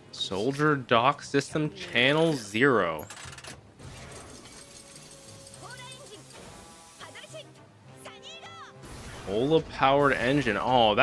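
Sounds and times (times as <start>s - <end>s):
background music: 0.0s - 11.0s
mechanical ratcheting and clanking: 2.1s - 6.4s.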